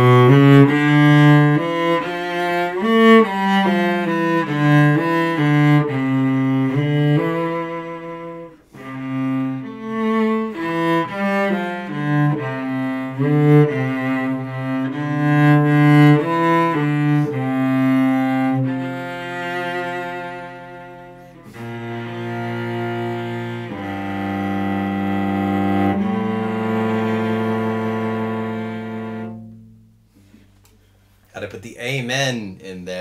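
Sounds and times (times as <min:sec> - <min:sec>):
bowed cello melody: 0:00.0 - 0:31.0.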